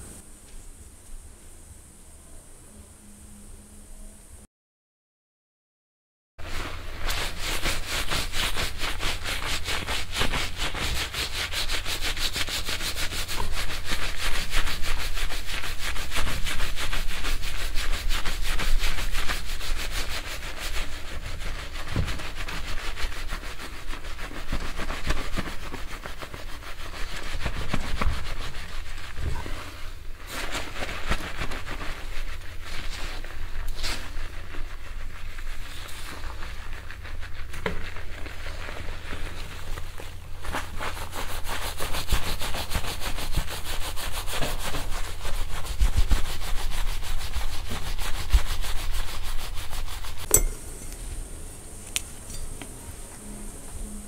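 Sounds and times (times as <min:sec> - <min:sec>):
scalp massager scratching hair: 0:06.4 - 0:50.9.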